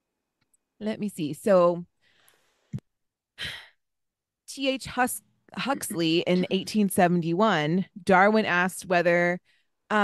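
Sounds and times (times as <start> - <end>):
breath into microphone: 2.0 - 2.8.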